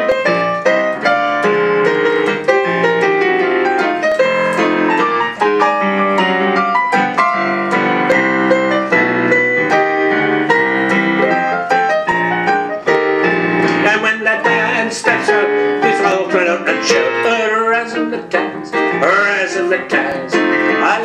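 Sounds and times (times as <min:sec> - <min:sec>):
jazzy piano solo: 0:00.0 - 0:21.0.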